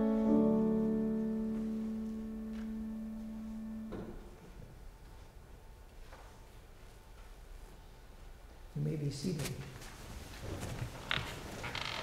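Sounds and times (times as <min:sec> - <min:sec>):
keyboard holding a chord: 0:00.0 - 0:04.5.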